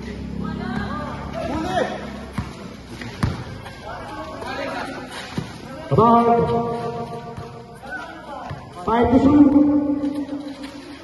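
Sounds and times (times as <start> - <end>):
voices: 0.0 - 11.0
basketball bouncing on concrete: 2.1 - 11.0.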